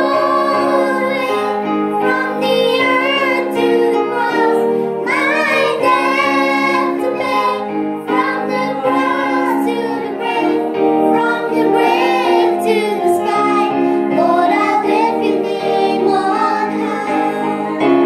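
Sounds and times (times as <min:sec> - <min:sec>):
children singing: 0:00.0 - 0:18.0
electronic keyboard chords: 0:00.0 - 0:18.0
girl singing into microphone: 0:00.0 - 0:18.0.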